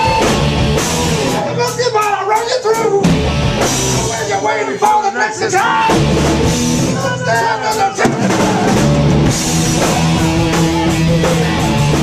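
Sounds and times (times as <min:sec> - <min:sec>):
live punk metal band: 0:00.0 - 0:12.0
person shouting vocals into microphone: 0:06.9 - 0:08.8.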